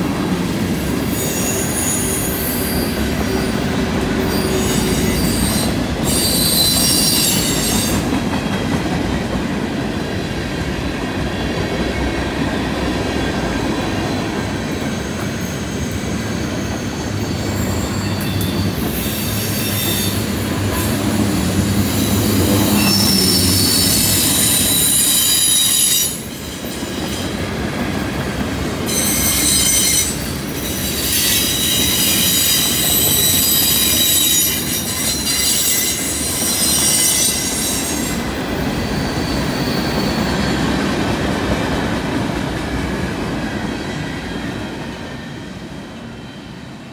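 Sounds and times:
train wheels squealing on rails: 0.0s - 9.6s, 10.2s - 46.9s
low rumble of train cars: 0.0s - 46.9s.

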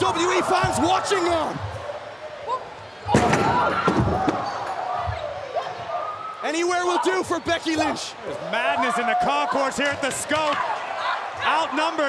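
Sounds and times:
loud slam: 3.1s - 4.4s.

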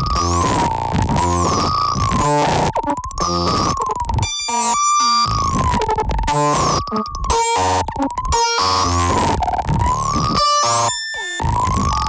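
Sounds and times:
choppy stuttering noise: 0.0s - 12.0s
glitchy stacked tones: 0.0s - 12.0s
wavering synthesizer tone: 0.0s - 12.0s.

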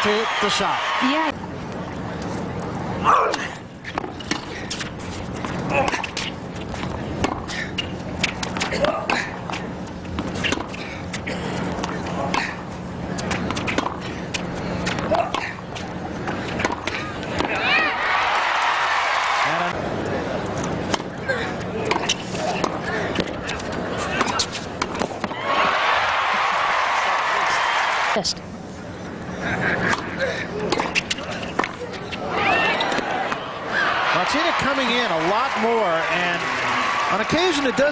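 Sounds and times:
crowd noise: 0.0s - 3.7s, 16.1s - 28.2s, 29.0s - 37.9s.

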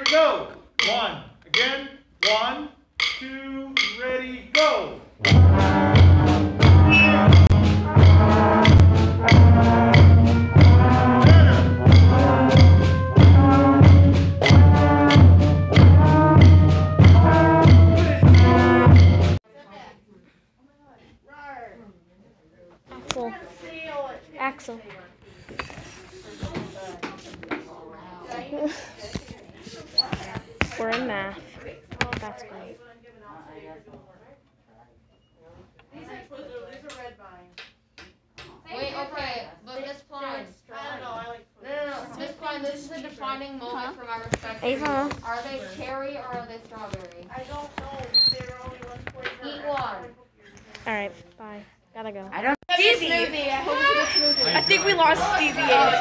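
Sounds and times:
school band playing a scale: 4.6s - 19.4s.

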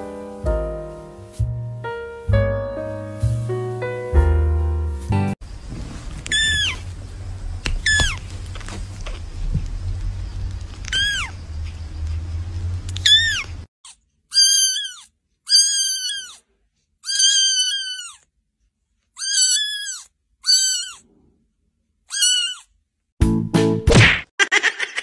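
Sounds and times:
cat meowing: 6.2s - 6.8s, 7.8s - 8.2s, 10.8s - 11.4s, 13.0s - 13.6s, 14.3s - 16.4s, 17.0s - 18.2s, 19.2s - 21.0s, 22.1s - 22.7s.

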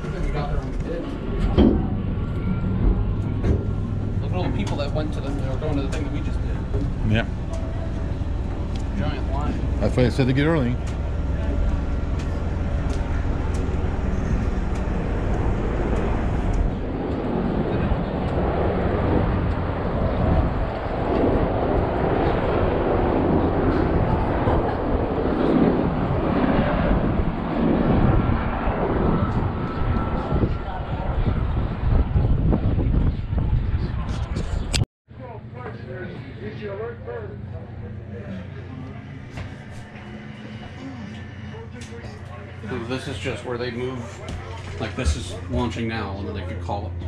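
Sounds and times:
wind buffeting microphone: 0.0s - 34.8s
indistinct chatter: 0.0s - 47.0s.

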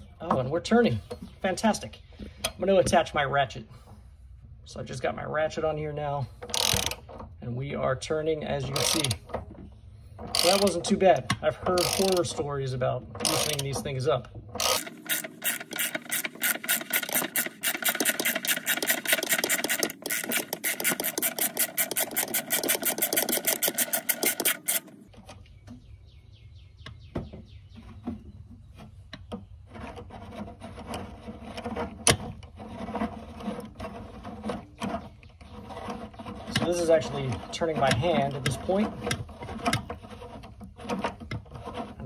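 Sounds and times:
hand ratchet clicking: 6.4s - 7.1s, 8.7s - 9.2s, 10.3s - 10.9s, 11.7s - 12.4s, 13.2s - 13.9s, 14.6s - 24.9s.

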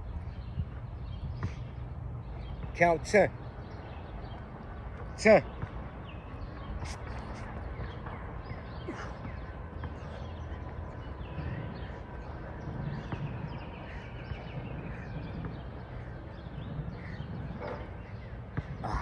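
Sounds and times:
birds calling: 0.0s - 19.0s
steady low rumble: 5.7s - 18.9s.

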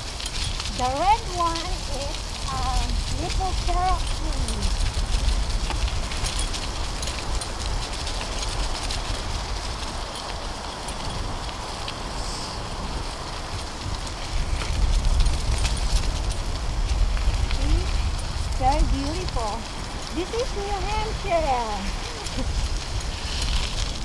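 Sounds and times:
dry leaves and grit crackling: 0.0s - 24.0s
wind rumbling on microphone: 0.0s - 24.0s.

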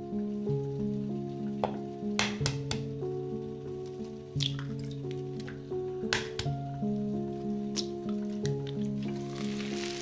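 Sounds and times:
music with held notes: 0.0s - 10.0s
egg cracking into a bowl: 1.6s - 2.8s, 6.1s - 6.5s.

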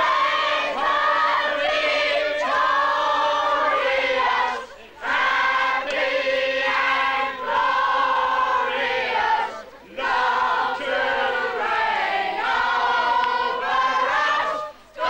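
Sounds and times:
crowd singing together: 0.0s - 15.0s.

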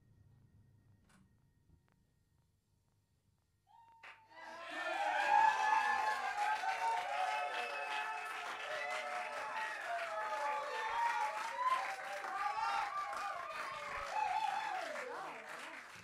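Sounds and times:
audience applause and cheering: 4.0s - 16.0s.

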